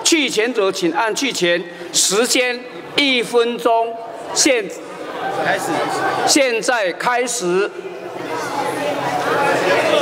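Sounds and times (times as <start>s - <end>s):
hubbub of overlapping voices: 0.0s - 10.0s.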